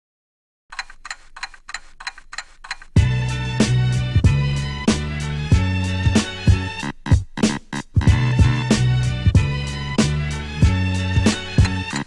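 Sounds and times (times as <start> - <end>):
clock ticking: 0.7 - 3.1, 11.3 - 12.0
hip-hop beat with deep bass: 2.9 - 12.0.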